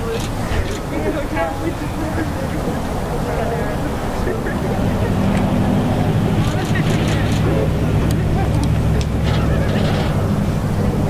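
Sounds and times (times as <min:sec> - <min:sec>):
background voices: 0:00.0 - 0:11.0.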